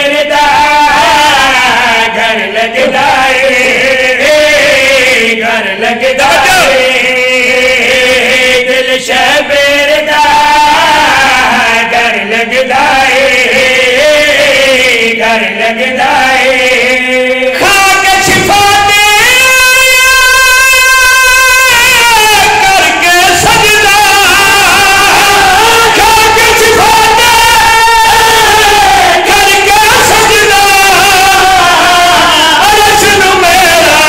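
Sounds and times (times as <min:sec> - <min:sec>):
amplified voice singing long note: 0:00.0 - 0:34.0
men chanting over loudspeakers: 0:00.0 - 0:34.0.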